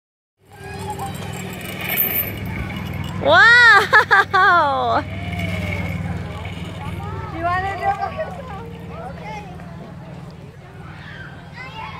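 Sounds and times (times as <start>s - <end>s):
zip line trolley rumbling on cable: 0.4s - 11.9s.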